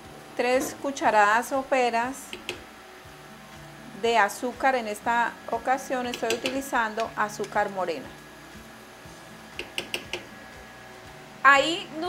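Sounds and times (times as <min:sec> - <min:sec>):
spoon clicking against ceramic dish: 0:06.1 - 0:06.6.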